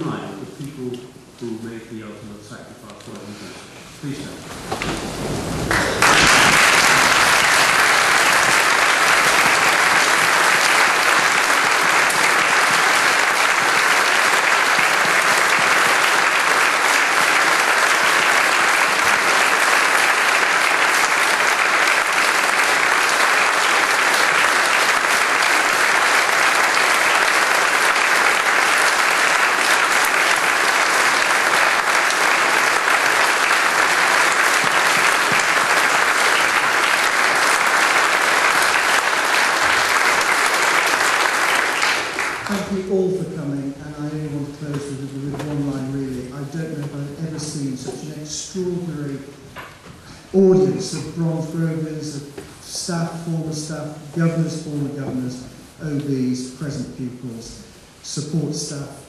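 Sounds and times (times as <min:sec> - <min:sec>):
large audience applauding: 0:04.4 - 0:45.3.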